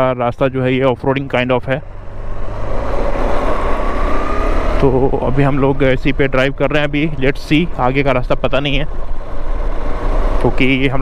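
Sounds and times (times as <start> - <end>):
man talking: 0.0 - 1.8, 4.8 - 8.9, 10.4 - 11.0.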